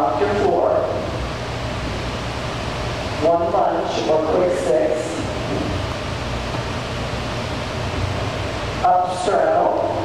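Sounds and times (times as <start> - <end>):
electric fan rushing air: 0.0 - 10.0
low hum: 0.0 - 10.0.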